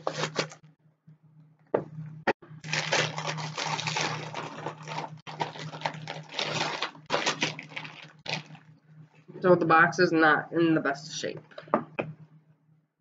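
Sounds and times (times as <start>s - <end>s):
package wrapping tearing and rustling: 0.0s - 0.6s, 2.6s - 8.6s.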